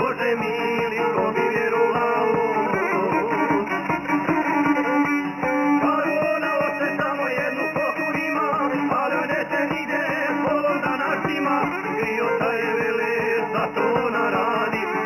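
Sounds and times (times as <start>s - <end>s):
folk music with violin: 0.0s - 15.0s.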